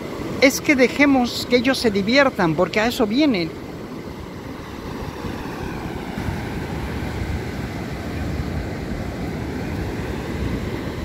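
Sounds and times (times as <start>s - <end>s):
ocean surf breaking on beach: 0.0s - 11.0s
wind rumbling on microphone: 2.8s - 11.0s.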